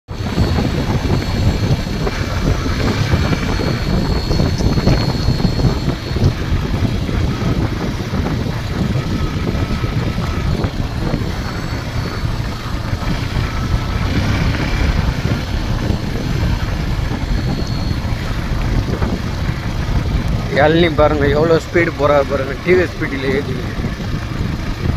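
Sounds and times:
motorcycle engine running: 0.1 - 24.9
wind buffeting microphone: 0.1 - 24.9.

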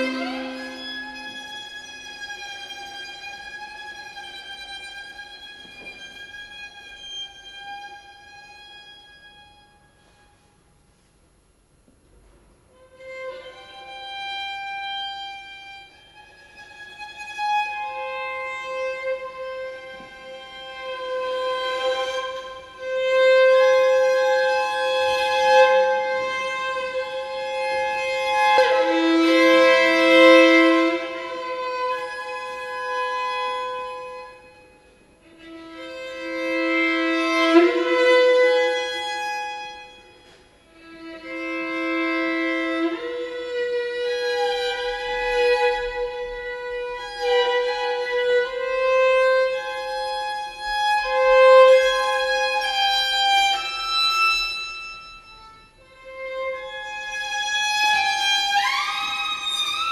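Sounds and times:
viola playing bowed notes: 0.0 - 10.4, 12.8 - 59.9.

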